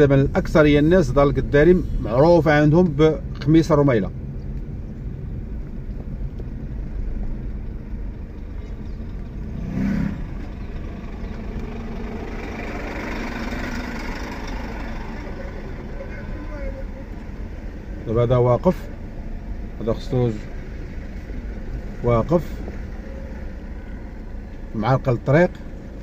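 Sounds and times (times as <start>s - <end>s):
car engine and road rumble: 0.0s - 26.0s
lorry passing: 9.4s - 18.1s.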